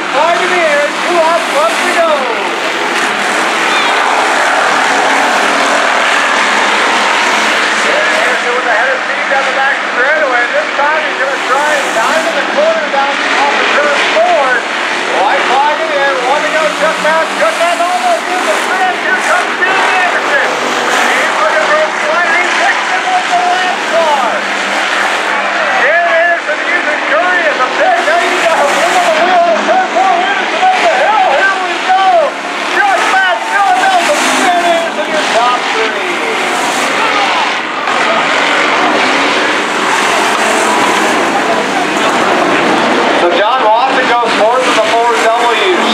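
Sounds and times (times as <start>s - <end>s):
race car engines revving: 0.0s - 45.9s.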